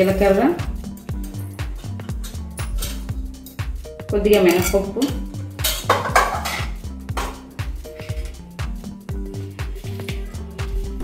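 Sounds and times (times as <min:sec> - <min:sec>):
background music with steady beat: 0:00.0 - 0:11.0
utensil clattering against frying pan: 0:04.4 - 0:07.4.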